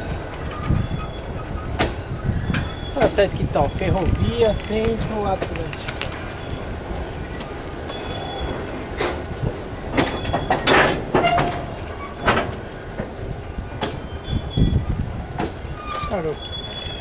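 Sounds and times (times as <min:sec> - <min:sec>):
metallic clanks from wagons: 0:00.0 - 0:17.0
steel wheels rumbling on track: 0:00.0 - 0:17.0
thin wheel squeals: 0:00.4 - 0:04.4, 0:07.9 - 0:08.7, 0:10.0 - 0:12.6, 0:13.8 - 0:17.0.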